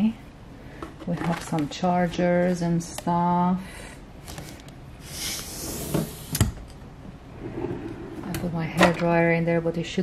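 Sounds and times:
drawer sliding rustle: 5.3 - 6.3.

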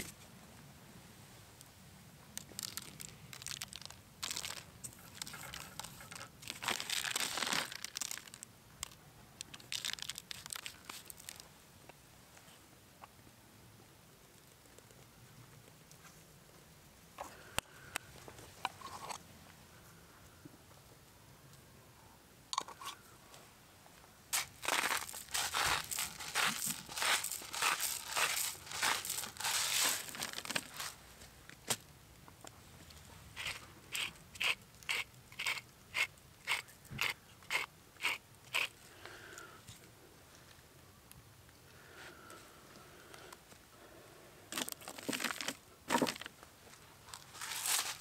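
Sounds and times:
salt grinder crunching: 2.4 - 11.4, 24.4 - 31.0, 33.4 - 38.8, 44.6 - 46.3, 47.2 - 48.0.

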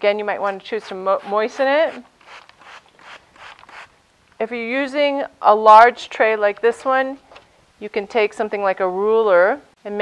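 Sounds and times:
spray bottle squirting: 2.2 - 3.9.

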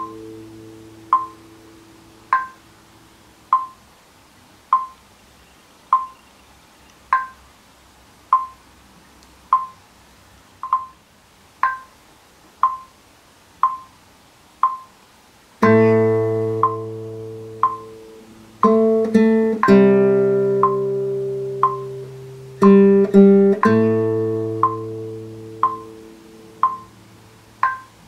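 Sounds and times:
guitar chord: 0.0 - 2.6, 15.6 - 27.3
metronome clicking: 0.0 - 2.7, 3.5 - 3.9, 4.7 - 5.0, 5.9 - 6.2, 6.9 - 7.5, 8.3 - 8.6, 9.2 - 9.8, 10.6 - 11.0, 11.6 - 12.0, 12.6 - 13.0, 13.6 - 14.0, 14.6 - 15.0, 15.6 - 28.0.

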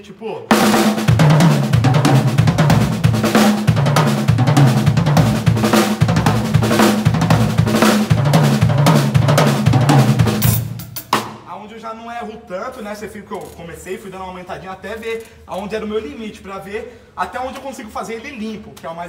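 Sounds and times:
drum kit played fast: 0.0 - 11.6.

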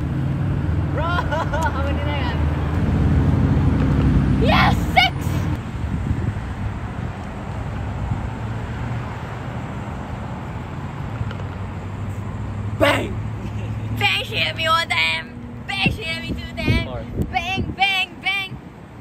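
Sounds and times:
road traffic: 0.0 - 19.0
vehicle engine humming: 0.0 - 19.0
person shouting: 4.4 - 5.4, 12.8 - 13.2.

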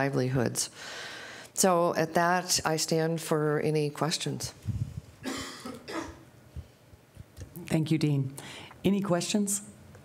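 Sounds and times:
person coughing: 5.2 - 6.2.

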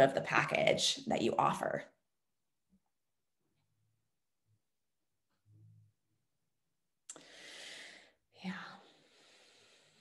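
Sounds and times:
woman inhaling sharply: 7.1 - 8.2
woman breathy exhale: 7.1 - 10.0.

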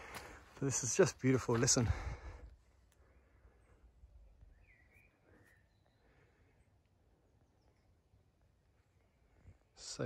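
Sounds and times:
bird chirps: 3.5 - 10.0.

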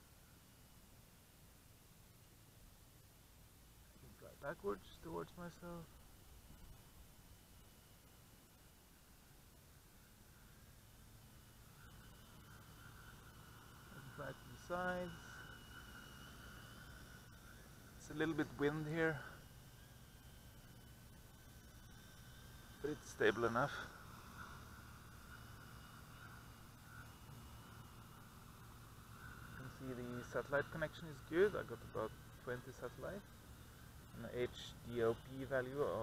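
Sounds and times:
distant quadcopter hum: 0.0 - 36.0.

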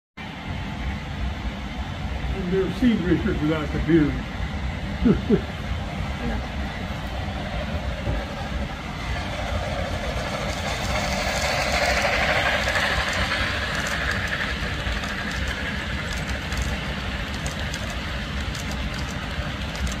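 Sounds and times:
model train rolling past: 0.3 - 20.0.

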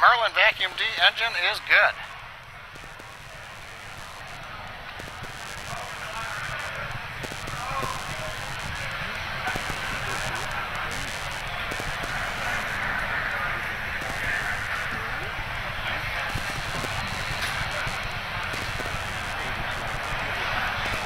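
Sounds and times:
murmur of voices: 0.0 - 21.0
steady background hiss: 0.0 - 21.0.

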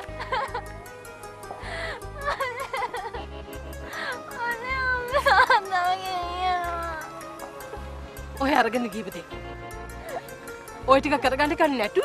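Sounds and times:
woman crying wail: 1.9 - 3.2, 4.0 - 7.9.

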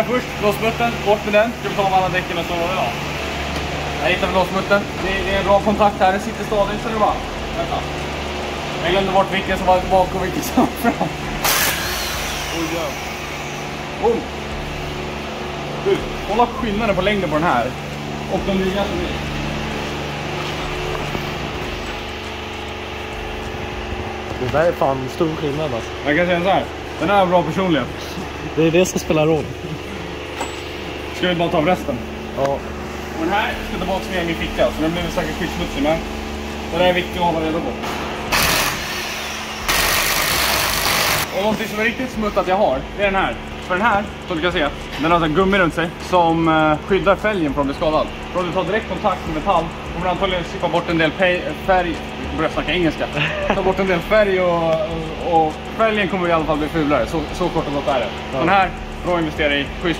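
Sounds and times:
low mechanical hum: 0.0 - 59.9
impact wrench on wheel bolts: 11.4 - 12.6, 38.3 - 41.3.

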